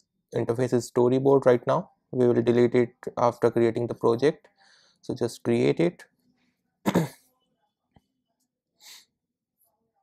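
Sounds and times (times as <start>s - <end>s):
man clearing his throat: 6.9s - 7.2s.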